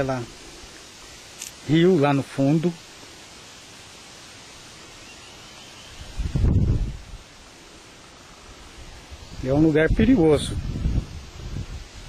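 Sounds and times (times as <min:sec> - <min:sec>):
steady outdoor hiss: 0:00.0 - 0:12.0
wind buffeting microphone: 0:06.0 - 0:07.3, 0:08.7 - 0:12.0.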